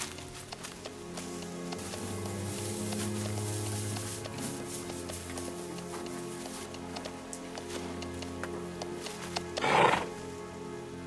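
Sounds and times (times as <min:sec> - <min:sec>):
film music with held notes: 0:00.0 - 0:11.0
horse neigh: 0:09.6 - 0:10.1.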